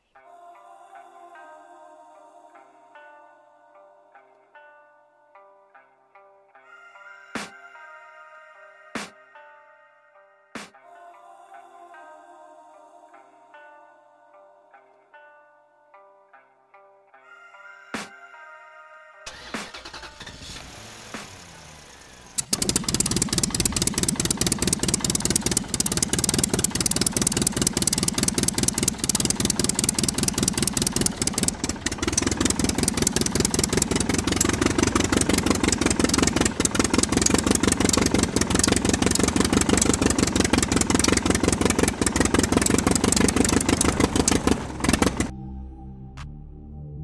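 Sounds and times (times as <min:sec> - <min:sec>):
model diesel engine chugging: 0:19.7 - 0:45.3.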